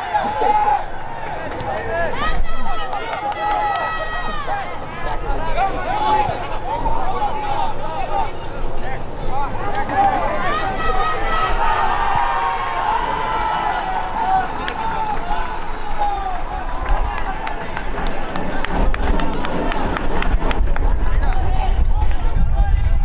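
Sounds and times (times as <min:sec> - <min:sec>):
people shouting outdoors: 0:00.0 - 0:08.2, 0:08.8 - 0:17.6.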